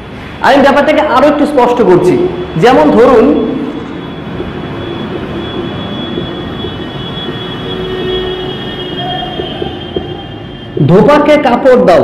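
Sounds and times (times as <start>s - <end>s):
steady whirring: 2.2s - 10.9s.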